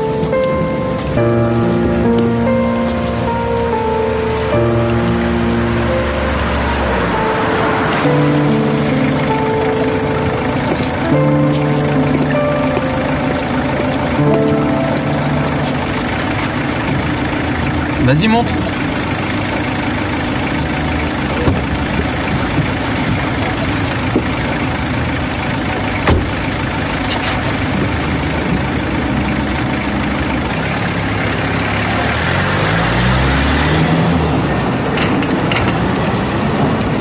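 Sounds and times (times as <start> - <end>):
slow music of held notes: 0.0 - 18.0, 26.9 - 37.0
rain on wet pavement: 0.0 - 37.0.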